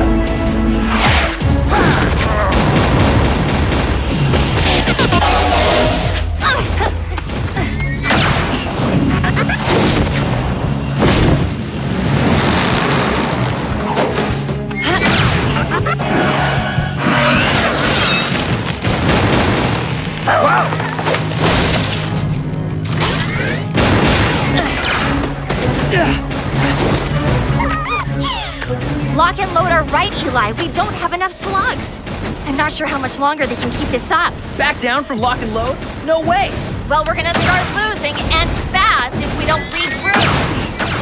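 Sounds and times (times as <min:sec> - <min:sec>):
action music: 0:00.0 - 0:41.0
sci-fi blaster shots: 0:01.8 - 0:06.4.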